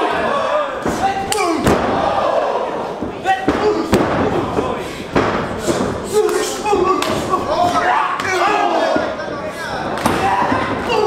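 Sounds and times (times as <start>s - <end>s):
spectators shouting: 0.0s - 4.0s, 6.1s - 11.0s
bodies slamming on ring mat: 0.8s - 2.2s.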